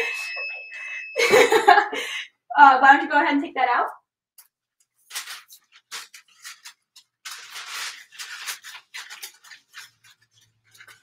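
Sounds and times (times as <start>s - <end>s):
paper rustling and crinkling: 4.8s - 11.0s.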